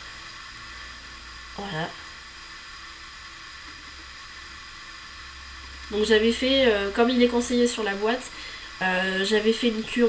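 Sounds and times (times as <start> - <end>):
background hiss: 0.0 - 10.0
person speaking: 1.6 - 2.0, 5.9 - 10.0.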